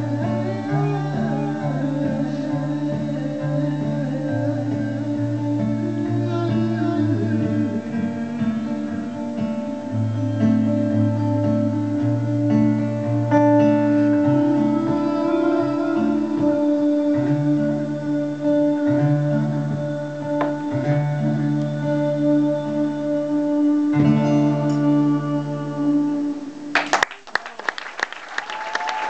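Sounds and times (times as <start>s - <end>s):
acoustic guitar chords: 0.0s - 27.3s.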